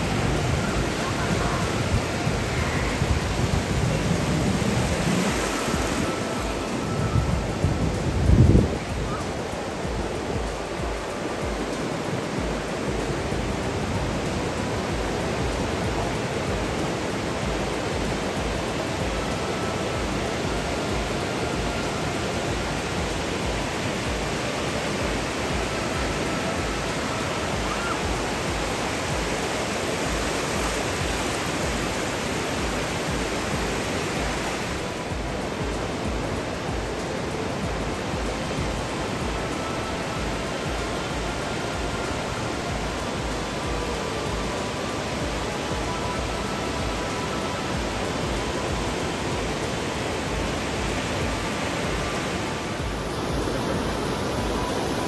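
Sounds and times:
ocean surf breaking: 0:00.0 - 0:55.0
wind buffeting microphone: 0:00.0 - 0:55.0.

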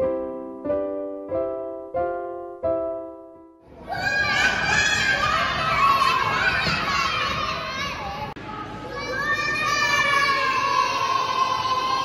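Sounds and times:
children shouting and cheering: 0:03.7 - 0:12.0.

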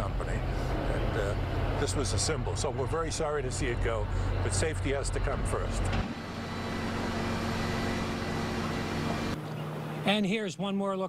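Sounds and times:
engine running steadily: 0:00.0 - 0:10.3.

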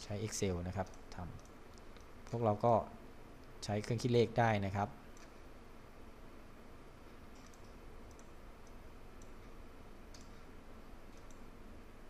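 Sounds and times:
low background hiss: 0:00.0 - 0:12.0
mouse and keyboard clicks: 0:07.3 - 0:09.5, 0:10.1 - 0:10.4, 0:11.1 - 0:11.5.

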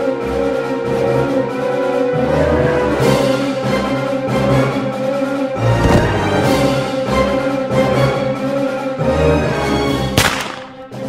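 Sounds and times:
dramatic soundtrack music: 0:00.0 - 0:11.0.

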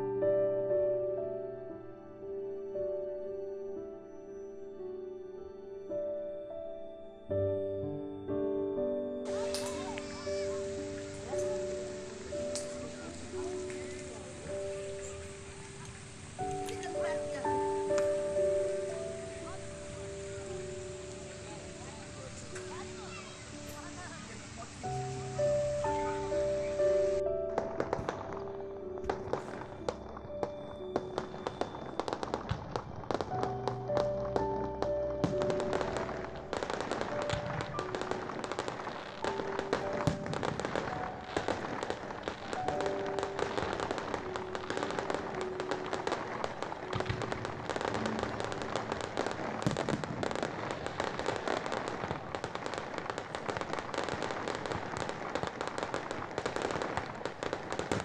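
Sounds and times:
background music with held notes: 0:00.0 - 0:58.0
fireworks crackling: 0:09.2 - 0:58.0.

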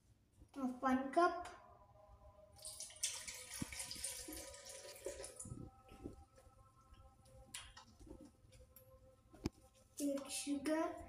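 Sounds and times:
milk pouring into metal jar: 0:02.6 - 0:05.6.

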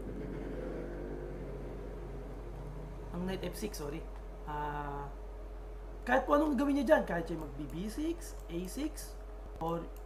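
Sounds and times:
low mechanical drone: 0:00.0 - 0:10.0.

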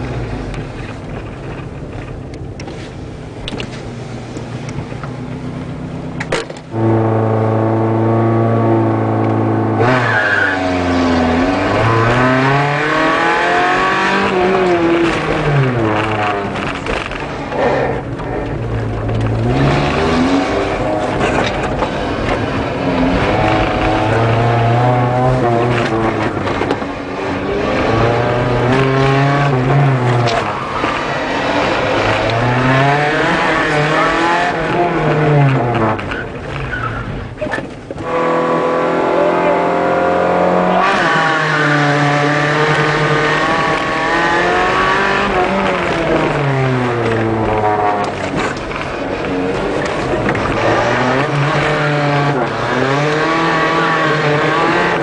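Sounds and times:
car engine revving: 0:03.3 - 0:55.0.

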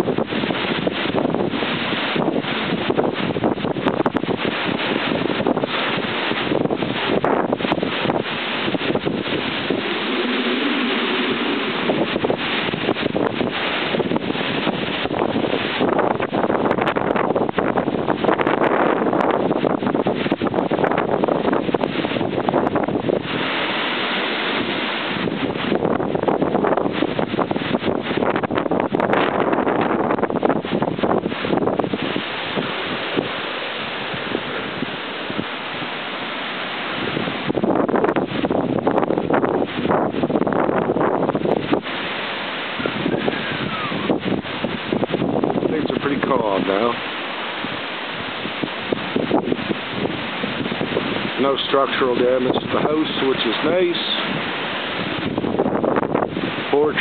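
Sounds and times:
storm wind gusting through trees: 0:00.0 - 0:57.0
wind buffeting microphone: 0:00.0 - 0:57.0.

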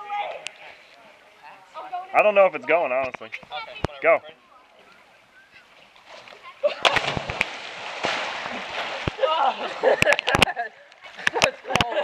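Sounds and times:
voices calling out: 0:00.0 - 0:07.2
heavy splash into water: 0:06.7 - 0:09.8
churning rushing water: 0:06.7 - 0:10.5.

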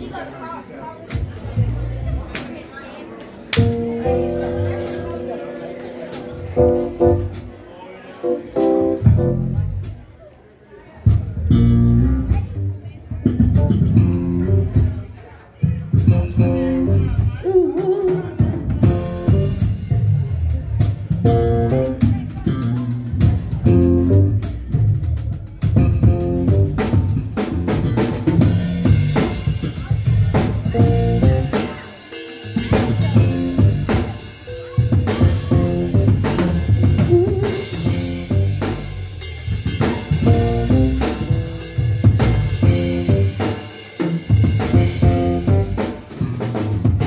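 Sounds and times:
band playing instrumental groove: 0:00.0 - 0:10.2, 0:11.0 - 0:47.0
electric bass: 0:03.6 - 0:05.3, 0:06.2 - 0:07.5, 0:08.6 - 0:09.9, 0:11.3 - 0:14.9, 0:16.0 - 0:17.4, 0:18.8 - 0:31.6, 0:32.5 - 0:43.6, 0:44.2 - 0:47.0
electronic keyboards: 0:03.6 - 0:07.6, 0:08.2 - 0:09.9, 0:21.1 - 0:43.6, 0:44.4 - 0:46.5
bass drum: 0:09.0 - 0:09.9, 0:11.1 - 0:15.0, 0:15.9 - 0:17.4, 0:18.4 - 0:31.6, 0:32.6 - 0:34.2, 0:34.8 - 0:43.5, 0:44.3 - 0:47.0.

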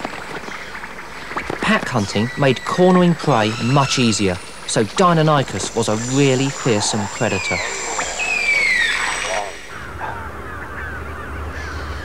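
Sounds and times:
faint bird calls: 0:00.0 - 0:12.0
low wind rumble: 0:00.0 - 0:12.0
shrill falling screeches: 0:05.8 - 0:09.8.

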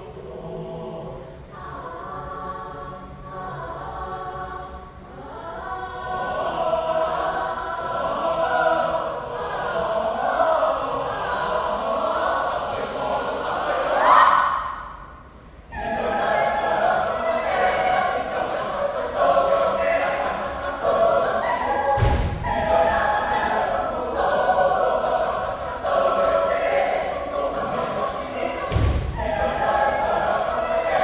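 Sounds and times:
choir singing: 0:00.0 - 0:31.0.

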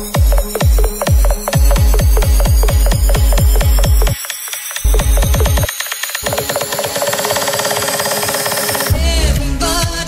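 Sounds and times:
electronic dance music build-up: 0:00.0 - 0:07.4.

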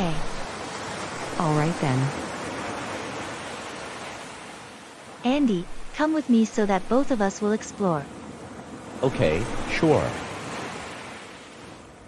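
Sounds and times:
ocean waves washing: 0:00.0 - 0:12.0.

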